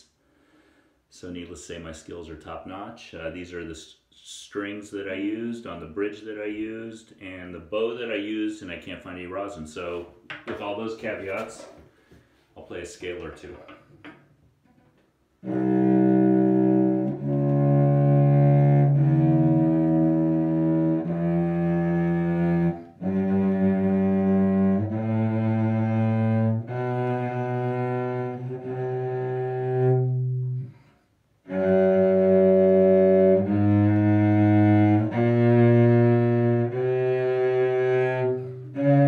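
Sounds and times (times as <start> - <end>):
cello bowed slowly: 15.4 - 39.0.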